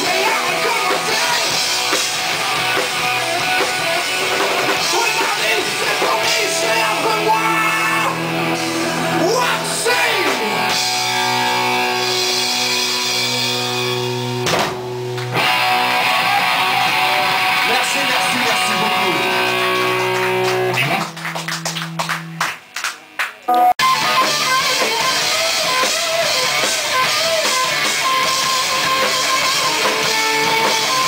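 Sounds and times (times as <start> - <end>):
live rock band playing: 0.0 - 22.5, 23.4 - 31.0.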